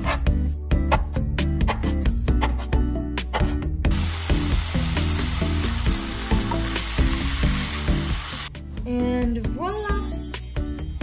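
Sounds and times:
food sizzling in a frying pan: 0:03.9 - 0:08.5.

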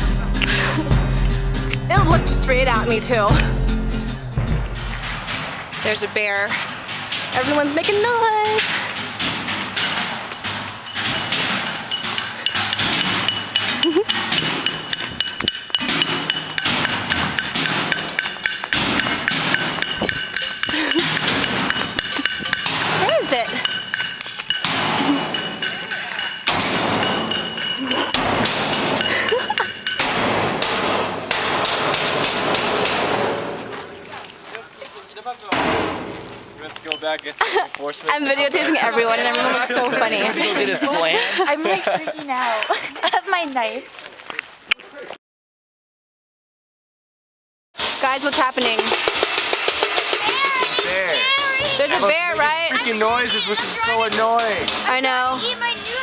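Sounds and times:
banging and clanging on objects: 0:01.9 - 0:34.4, 0:35.5 - 0:37.2, 0:47.8 - 0:56.0
people shouting: 0:50.1 - 0:54.3.

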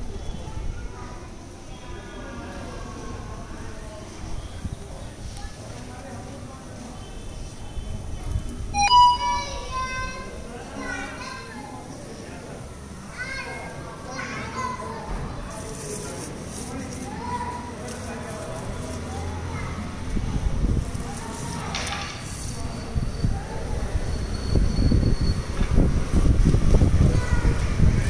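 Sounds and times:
children playing and chattering: 0:00.0 - 0:28.0.

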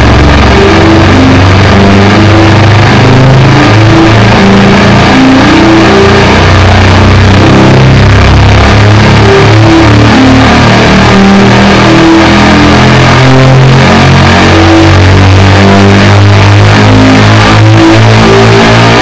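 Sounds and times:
distorted electric guitar: 0:00.0 - 0:19.0.

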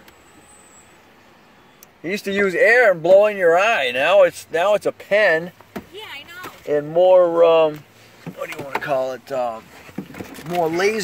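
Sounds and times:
car cabin background noise: 0:00.0 - 0:11.0.

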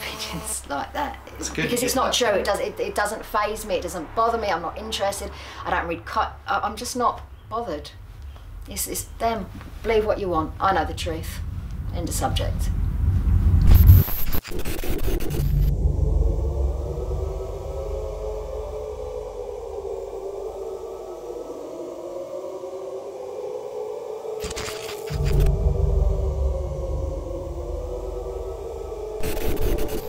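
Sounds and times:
static hiss: 0:00.0 - 0:03.0, 0:13.5 - 0:15.8, 0:24.3 - 0:25.8, 0:29.2 - 0:30.0
wavering moaning drone: 0:00.0 - 0:14.2, 0:15.0 - 0:30.0
deep rumble: 0:00.6 - 0:23.1, 0:24.4 - 0:30.0.

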